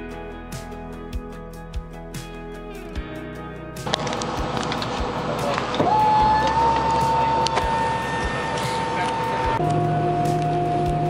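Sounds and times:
guitar music: 0:00.0 - 0:11.0
jet cabin rush: 0:03.9 - 0:09.6
jet engine whine spooling up: 0:03.9 - 0:11.0.

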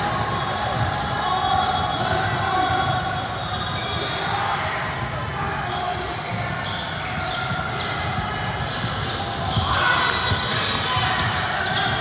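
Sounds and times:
sneakers squeaking on gym floor: 0:00.0 - 0:12.0.

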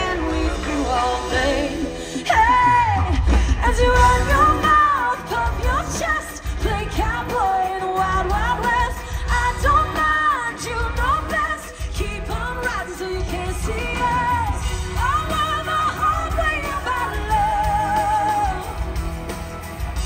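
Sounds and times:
woman singing into microphone: 0:00.0 - 0:18.9
pop band playing: 0:00.0 - 0:20.0.

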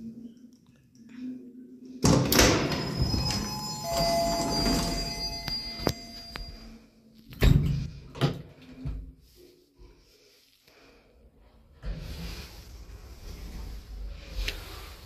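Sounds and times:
elevator door clunk: 0:02.1 - 0:06.2.

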